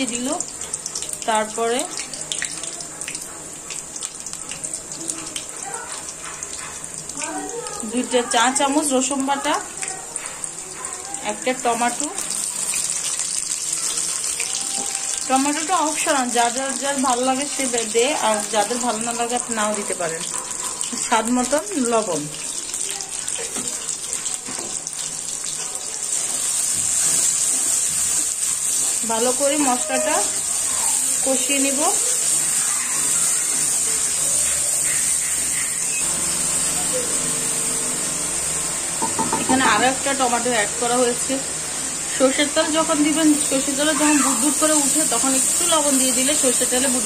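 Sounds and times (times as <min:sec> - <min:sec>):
crackles and pops of frying: 0:00.0 - 0:41.4, 0:42.1 - 0:47.0
onions sizzling in hot oil: 0:00.0 - 0:47.0.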